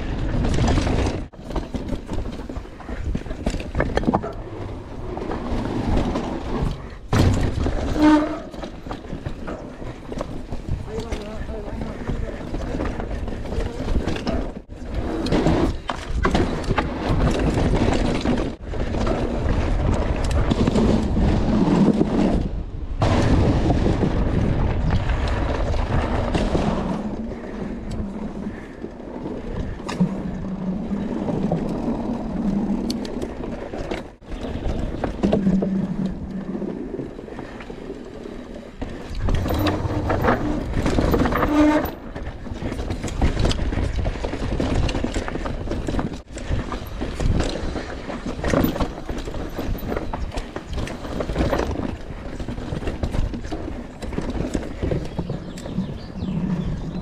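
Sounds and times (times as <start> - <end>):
bike rattling over bumps: 0.0 - 57.0
bike tyres rolling over dirt: 0.0 - 57.0.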